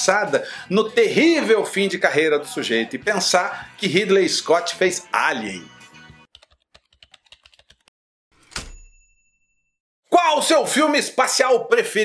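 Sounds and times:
bright ding: 0:08.4 - 0:09.7.

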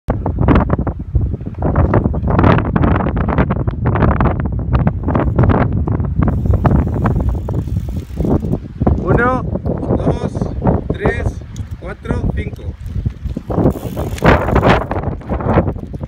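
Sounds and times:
wind buffeting microphone: 0:00.1 - 0:16.0.

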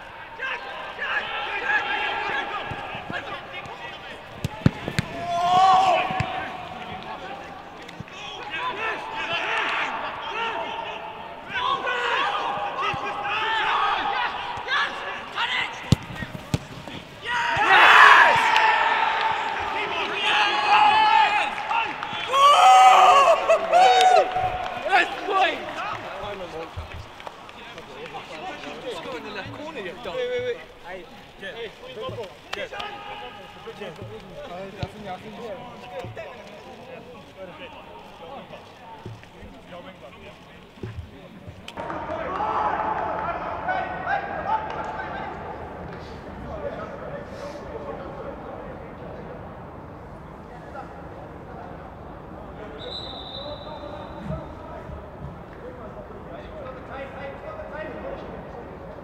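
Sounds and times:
players shouting and whooping: 0:00.3 - 0:15.9, 0:17.2 - 0:26.7
football kicked with a thud: 0:04.4 - 0:05.3, 0:15.9 - 0:17.0.

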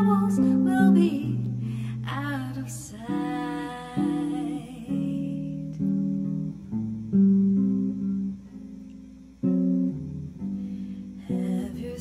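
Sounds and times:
electric guitar jazz chords: 0:00.0 - 0:12.0.

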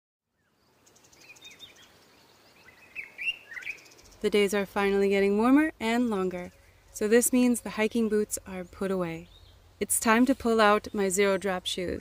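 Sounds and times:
faint outdoor background noise: 0:00.3 - 0:12.0
small birds chirping: 0:00.4 - 0:12.0.

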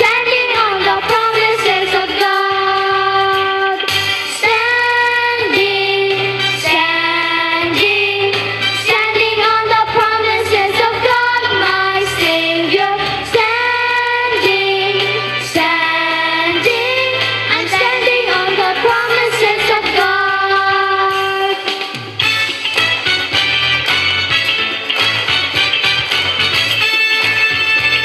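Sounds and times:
children's choir singing: 0:00.0 - 0:22.0
woman singing lead: 0:00.0 - 0:22.0
instrumental accompaniment with bass: 0:00.0 - 0:28.0.

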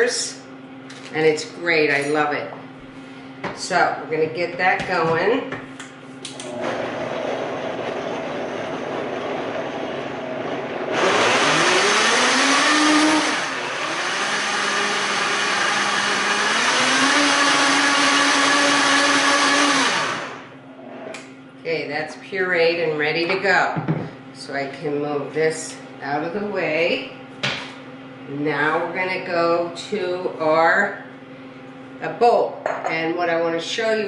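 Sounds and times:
blender running: 0:06.3 - 0:20.9.

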